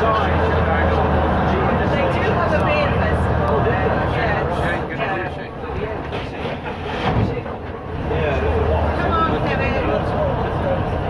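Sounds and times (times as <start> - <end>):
bus body rattling: 0.0 - 11.0
bus diesel engine running: 0.0 - 11.0.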